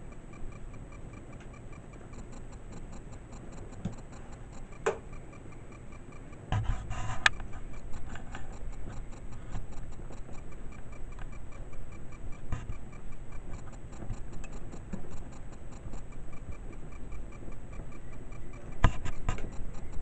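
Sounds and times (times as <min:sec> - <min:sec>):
fast even ticking: 0:00.0 - 0:20.0.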